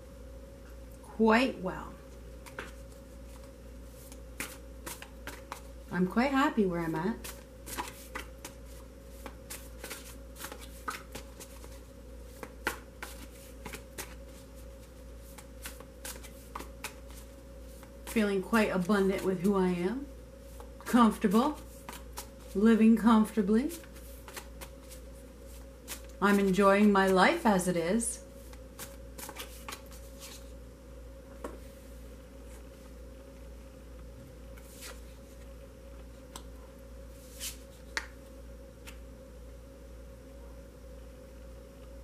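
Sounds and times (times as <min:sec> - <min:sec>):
steady low hum: 0:00.0 - 0:42.0
cards being shuffled: 0:02.4 - 0:05.8, 0:07.2 - 0:18.2, 0:20.5 - 0:22.6, 0:23.2 - 0:27.2, 0:28.4 - 0:30.5, 0:34.6 - 0:35.5
soft card slaps: 0:04.1 - 0:05.7, 0:07.2 - 0:08.6, 0:12.3 - 0:14.2, 0:37.4 - 0:38.2.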